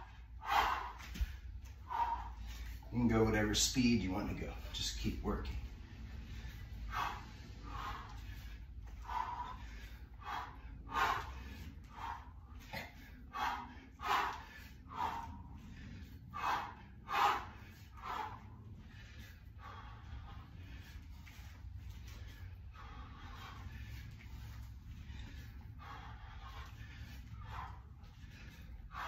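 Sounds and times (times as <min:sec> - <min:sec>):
low hum: 0:00.0 - 0:29.0
man breathing forcefully: 0:00.0 - 0:29.0.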